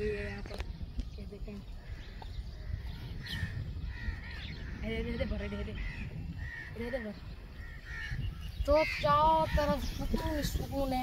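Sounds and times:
faint bird calls: 0.0 - 11.0.

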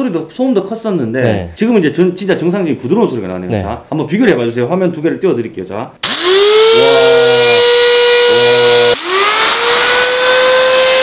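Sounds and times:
die grinder high whine: 6.0 - 11.0.

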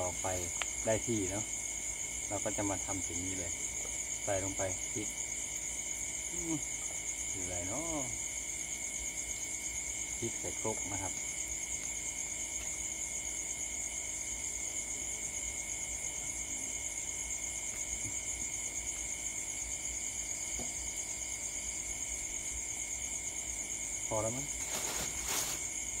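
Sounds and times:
crickets trilling: 0.0 - 26.0
low steady insect tone: 0.0 - 26.0.

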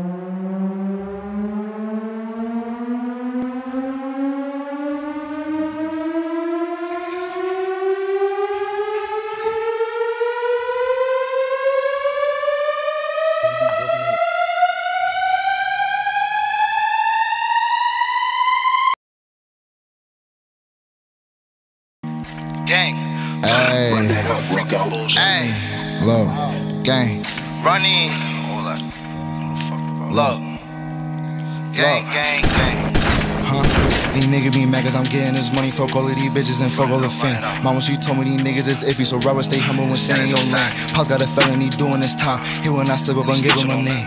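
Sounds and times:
siren-like tone rising in pitch: 0.0 - 19.0, 27.5 - 44.0.

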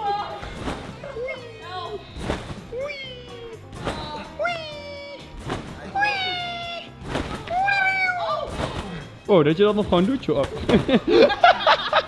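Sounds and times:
background music with steady beat: 0.0 - 12.0
trampoline bed thumping: 0.4 - 1.3, 2.2 - 2.9, 5.4 - 6.2, 7.0 - 9.2.

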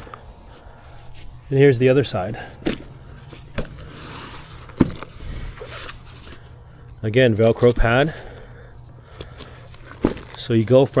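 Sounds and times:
cloth rustling and scraping: 2.6 - 6.5.

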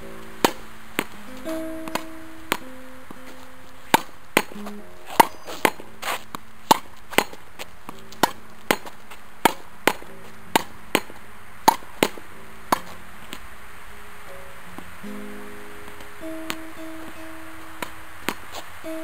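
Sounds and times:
tennis ball hitting rackets and wall: 0.0 - 19.0.

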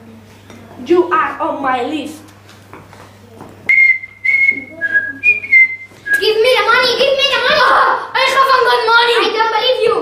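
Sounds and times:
person whistling a tune: 3.7 - 6.3
child's voice: 6.2 - 10.0.

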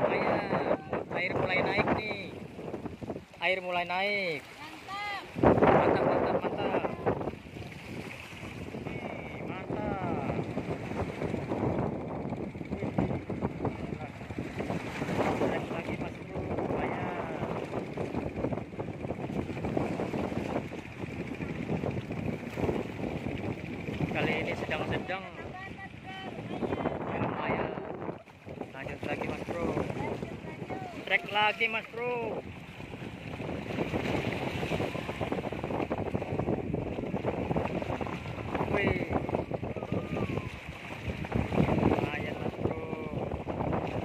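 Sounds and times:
waves washing against rocks: 0.0 - 44.0
wind buffeting microphone: 0.0 - 44.0.

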